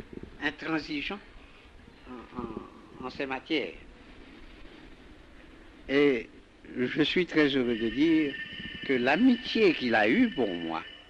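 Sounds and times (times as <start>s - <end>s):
tape hiss: 0.0s - 11.0s
elderly man speaking: 0.4s - 1.3s, 2.1s - 3.8s, 5.9s - 10.9s
low rumble: 2.1s - 11.0s.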